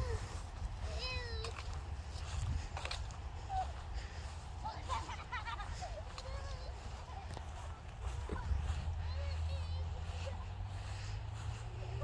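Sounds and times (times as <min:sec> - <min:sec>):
child calling out: 0:00.0 - 0:01.6
wind rumble on microphone: 0:01.5 - 0:04.5, 0:06.8 - 0:12.0.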